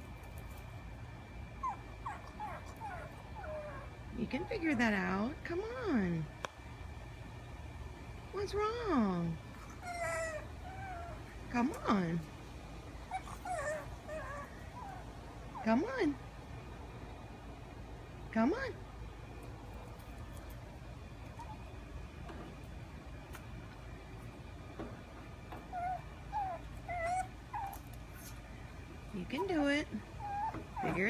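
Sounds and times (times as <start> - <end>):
puppy whimpering: 1.6 - 4.8, 9.6 - 11.8, 13.0 - 15.8, 21.3 - 21.7, 25.6 - 28.5, 29.3 - 31.0.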